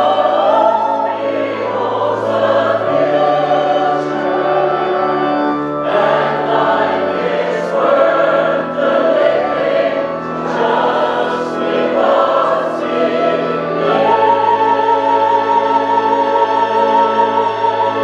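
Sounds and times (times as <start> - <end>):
choir singing a hymn: 0.0 - 18.0
sustained bass notes: 0.0 - 18.0.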